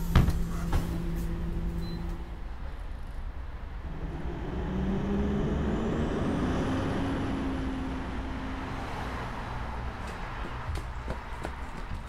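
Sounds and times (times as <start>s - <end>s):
minibus engine accelerating: 0.0s - 12.0s.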